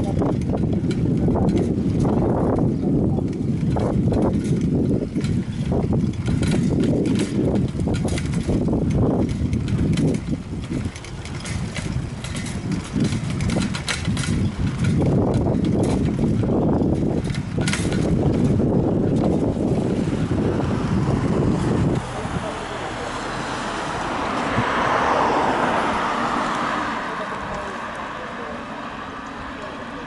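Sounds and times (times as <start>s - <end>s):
bicycle clicks and rattles: 0.0s - 30.0s
road traffic: 0.0s - 30.0s
wind buffeting microphone: 0.0s - 30.0s.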